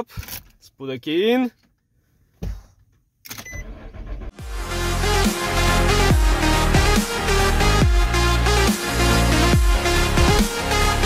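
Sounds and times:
truck engine cranking: 0:03.4 - 0:04.4
loud electronic music: 0:04.4 - 0:11.0.

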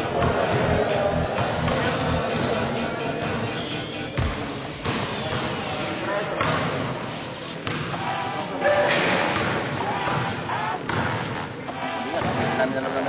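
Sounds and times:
voices of players and spectators: 0:00.0 - 0:13.0
basketball bouncing on court: 0:04.1 - 0:05.8, 0:06.4 - 0:06.9, 0:07.6 - 0:08.0, 0:09.2 - 0:11.5.

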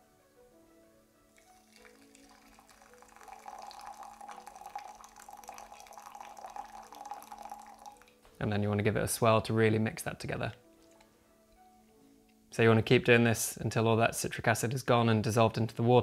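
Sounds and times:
water trickling into glass: 0:01.4 - 0:08.2.

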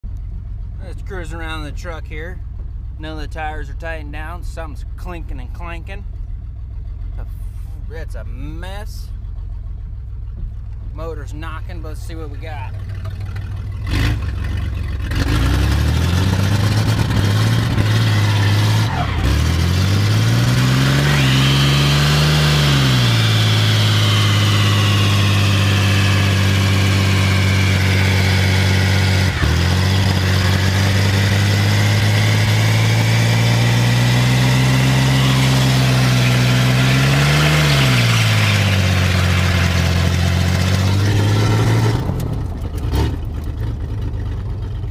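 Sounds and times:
pickup engine revving: 0:11.6 - 0:44.5
tires squealing: 0:12.8 - 0:43.3.

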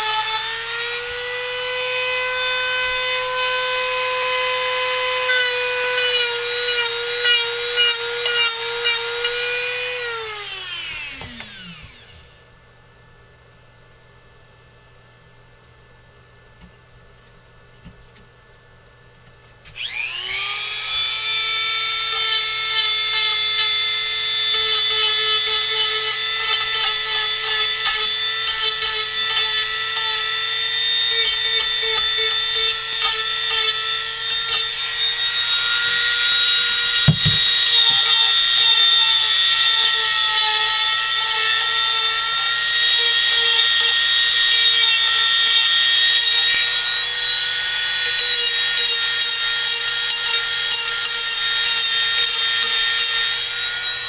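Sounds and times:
rotary tool whining: 0:00.0 - 0:12.4, 0:19.7 - 0:54.0
bit grinding into wood: 0:19.8 - 0:54.0.

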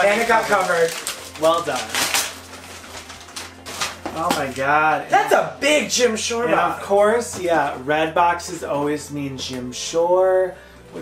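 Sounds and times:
wrapping paper rustling: 0:00.0 - 0:04.9.

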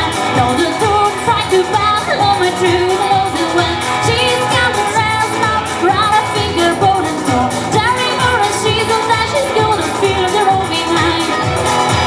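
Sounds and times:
electric guitar: 0:00.0 - 0:12.0
person singing: 0:00.0 - 0:12.0.

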